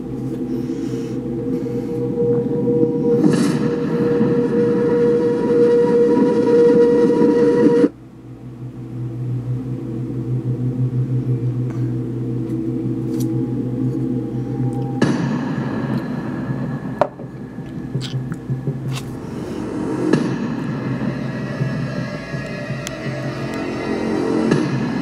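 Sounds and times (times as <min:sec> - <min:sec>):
dramatic rumbling drone: 0:00.0 - 0:25.0
pulsing low hum: 0:00.0 - 0:25.0.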